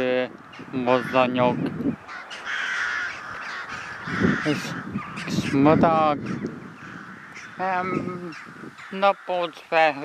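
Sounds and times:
crows cawing: 0:00.0 - 0:10.0.

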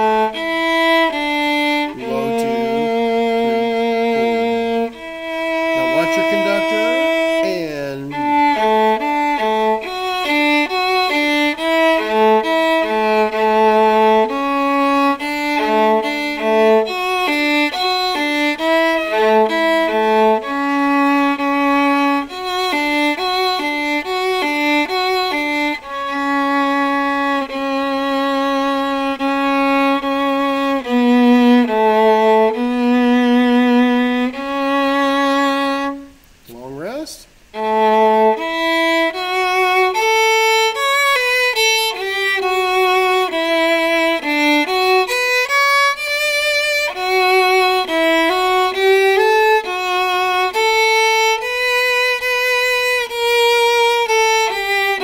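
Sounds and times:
solo viola playing: 0:00.0 - 0:55.0.

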